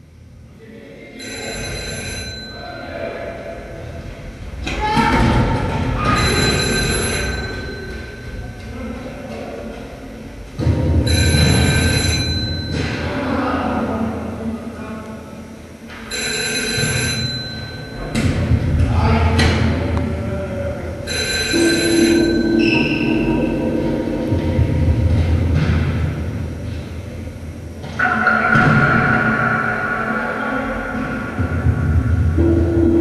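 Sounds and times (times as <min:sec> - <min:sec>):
steady high ringing tones: 0:00.6 - 0:04.6, 0:05.6 - 0:33.0
low rumble: 0:28.4 - 0:33.0.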